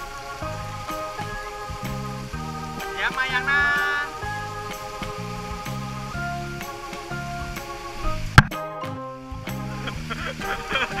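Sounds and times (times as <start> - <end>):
music with held notes: 0.0 - 11.0
steady bass line: 0.0 - 11.0.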